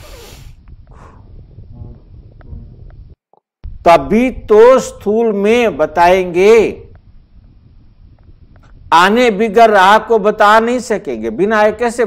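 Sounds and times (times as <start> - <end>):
faint low rumble: 0.2 - 4.6
man speaking: 3.9 - 6.8.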